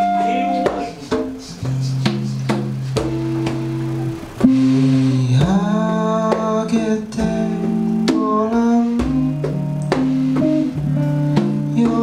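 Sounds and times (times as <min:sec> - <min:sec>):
guitar notes ringing: 0:00.0 - 0:12.0.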